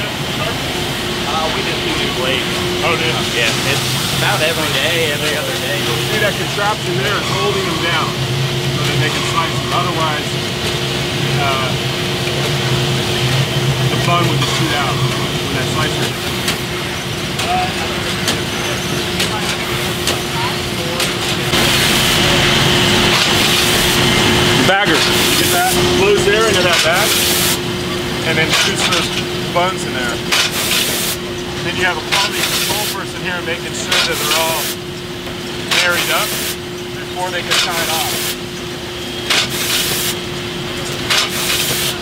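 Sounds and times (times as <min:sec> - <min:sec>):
loud steady hiss: 0:00.0 - 0:06.8, 0:21.5 - 0:27.6, 0:30.3 - 0:31.2, 0:32.2 - 0:34.9, 0:35.6 - 0:38.6, 0:39.3 - 0:40.3
machinery humming: 0:00.0 - 0:42.0
machine clicks and clacks: 0:15.5 - 0:27.6, 0:28.2 - 0:33.1, 0:33.7 - 0:36.6, 0:37.2 - 0:42.0.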